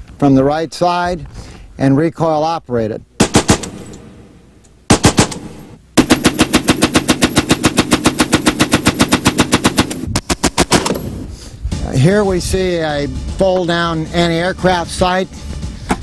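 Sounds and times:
machine gun firing bursts: 3.2s - 4.2s, 4.9s - 11.0s.

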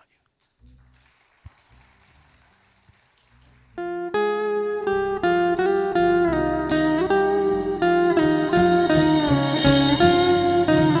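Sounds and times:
plucked lute notes: 3.8s - 11.0s.

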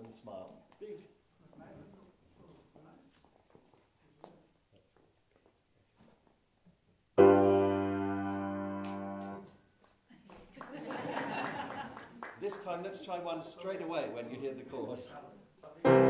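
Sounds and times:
piano chord ringing: 7.2s - 9.4s.

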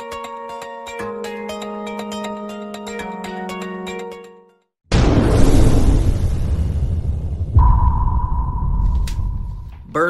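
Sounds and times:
deep low hits: 4.9s - 10.0s
high sonar-like tone: 7.6s - 9.9s.

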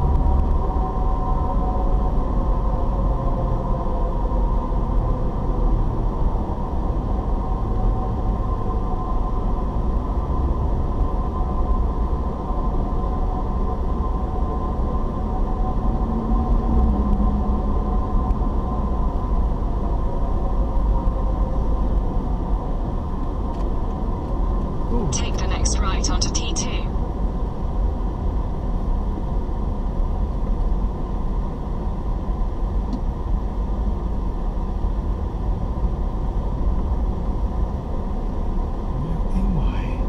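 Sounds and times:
car road and engine rumble: 0.0s - 40.0s
person speaking: 24.9s - 26.9s, 38.9s - 40.0s.

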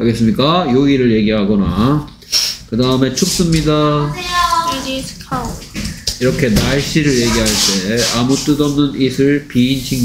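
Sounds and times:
person speaking: 6.2s - 10.0s.

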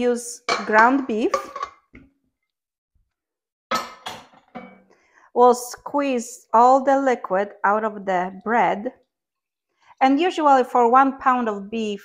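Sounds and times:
dishes clinking on countertop: 0.5s - 2.0s, 3.7s - 4.9s.

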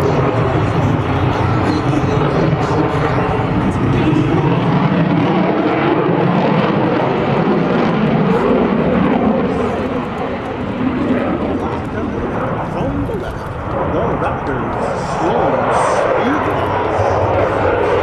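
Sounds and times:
jet fighter roaring overhead: 0.0s - 18.0s.

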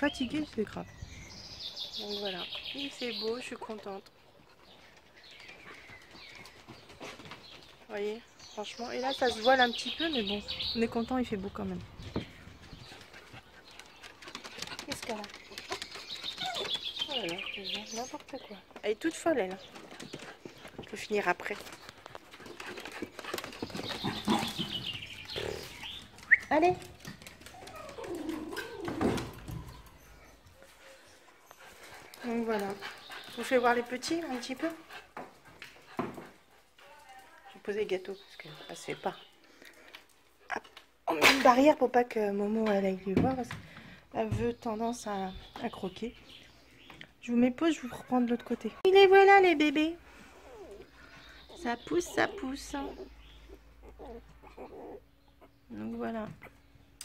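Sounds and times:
puppies squeaking and whimpering: 15.6s - 17.4s, 27.4s - 30.4s, 50.3s - 55.6s.

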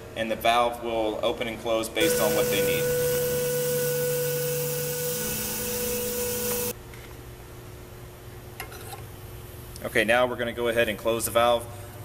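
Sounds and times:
pressurised gas rushing with whine: 2.0s - 6.8s.

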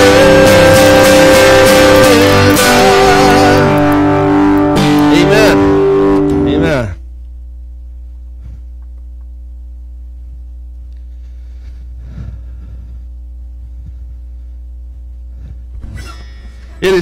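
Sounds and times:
electrical mains hum: 0.0s - 17.0s
faint rustles: 8.1s - 8.9s.

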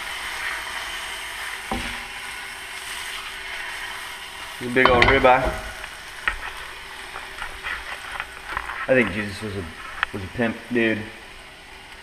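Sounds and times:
steak sizzling in a pan: 0.0s - 12.0s.

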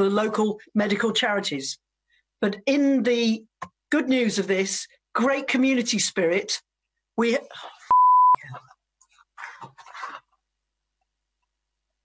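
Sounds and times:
censor bleep: 7.9s - 8.4s.

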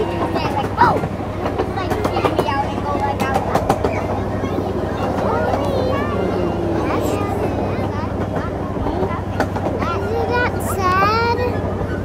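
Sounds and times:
miniature train hum: 0.0s - 12.0s
wheels clicking on rails: 0.0s - 12.0s.

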